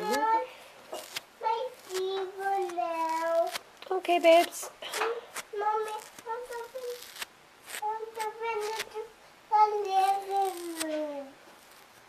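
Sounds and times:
comb scratching through fleece: 0.0 - 9.0, 9.8 - 12.0.

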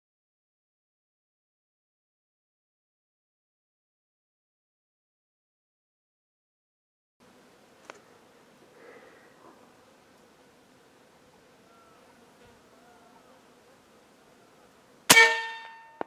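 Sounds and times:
air rifle shot: 15.1 - 16.0.

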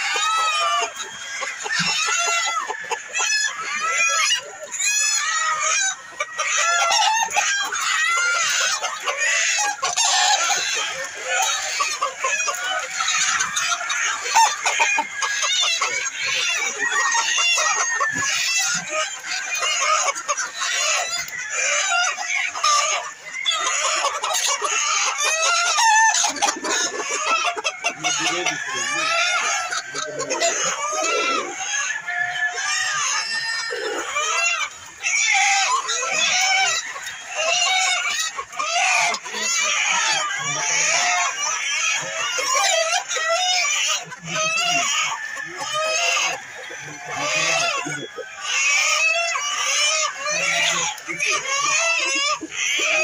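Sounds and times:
hens clucking: 0.0 - 53.0
roosters crowing: 0.0 - 53.0.

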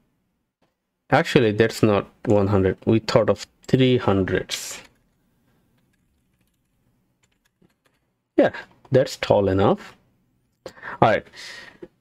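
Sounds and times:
faint keyboard keystrokes: 4.8 - 8.1.

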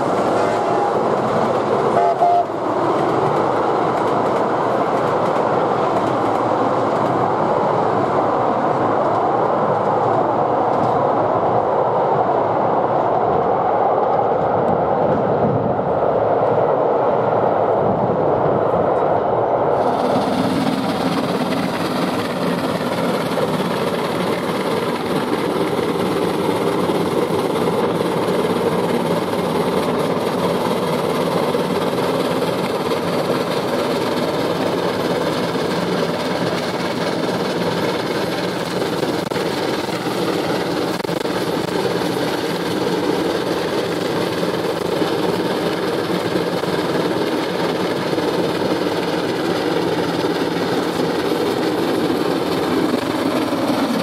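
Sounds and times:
steam locomotive working: 0.0 - 54.0
vehicle running noise rumble: 19.7 - 54.0.

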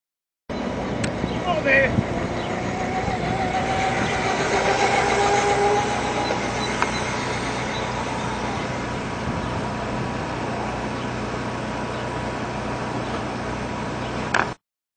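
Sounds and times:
toy motor whine: 2.1 - 9.1.

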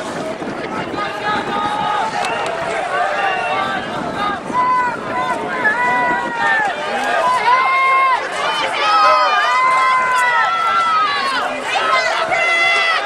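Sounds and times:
crowd shouting and cheering: 0.0 - 13.0.

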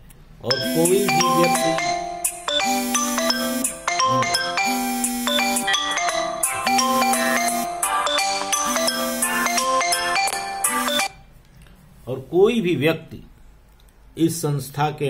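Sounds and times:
mobile phone ringtone: 0.5 - 11.2.

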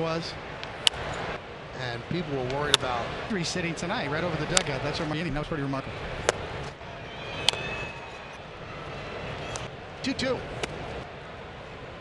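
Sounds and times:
ballpark crowd noise: 0.0 - 12.0
baseball bat crack: 0.6 - 1.3, 2.4 - 3.0, 6.2 - 6.7, 7.4 - 7.8, 10.4 - 11.0.

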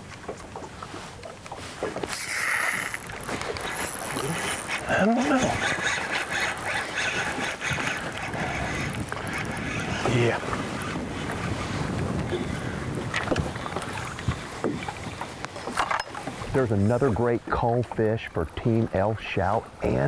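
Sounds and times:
wind on microphone: 0.0 - 17.8
water noise around boat: 0.0 - 20.0.

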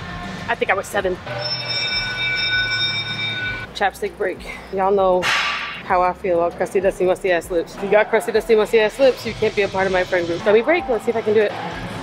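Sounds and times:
held chord of high tones: 1.3 - 3.7.

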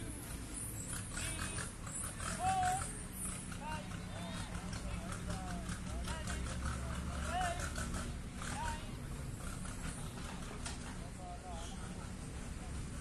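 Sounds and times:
distant voices: 0.0 - 13.0
low steady rumble: 0.0 - 13.0.

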